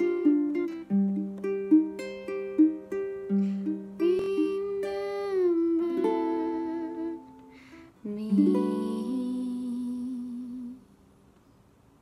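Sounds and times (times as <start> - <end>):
ukulele chord ringing: 0.0 - 10.7
woman humming: 4.0 - 10.9.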